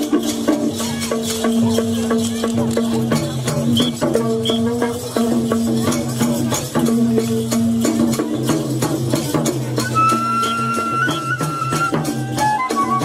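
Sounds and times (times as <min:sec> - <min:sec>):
rattling clicking percussion: 0:00.0 - 0:13.0.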